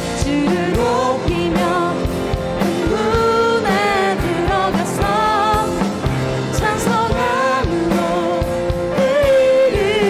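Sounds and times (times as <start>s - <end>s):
live band with drums keyboard guitar: 0.0s - 10.0s
worship team singing: 0.0s - 10.0s.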